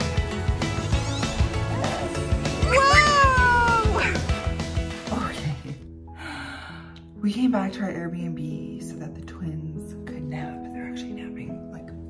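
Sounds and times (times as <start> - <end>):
toddler squealing: 2.6 - 4.2.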